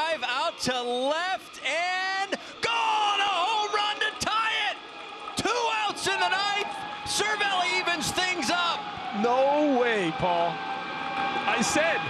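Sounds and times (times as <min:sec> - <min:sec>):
man commentating: 0:00.0 - 0:04.8, 0:05.4 - 0:10.6, 0:11.5 - 0:12.0.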